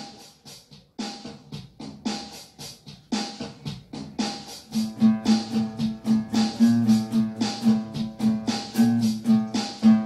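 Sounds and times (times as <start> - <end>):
acoustic guitar strumming: 4.8 - 10.0.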